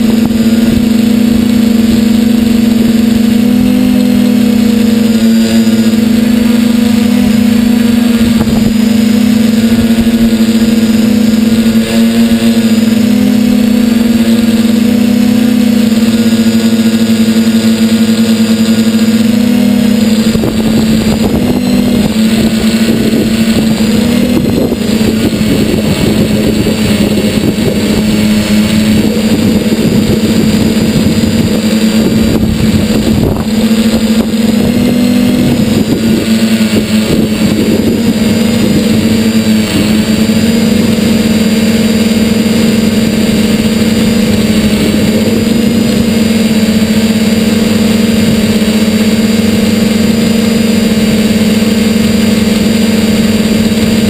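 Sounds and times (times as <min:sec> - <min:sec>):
wind buffeting microphone: 0:00.0 - 0:12.5, 0:19.3 - 0:50.2
electric motor and propeller: 0:00.0 - 0:54.0.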